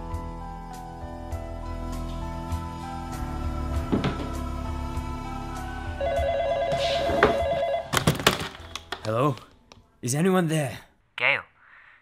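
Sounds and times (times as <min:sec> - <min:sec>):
telephone ringing electronic warble: 0:06.0 - 0:07.9.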